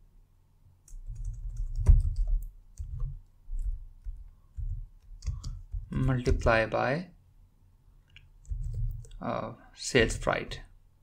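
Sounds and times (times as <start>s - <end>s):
computer keyboard typing: 0.8s - 6.5s, 8.4s - 9.2s.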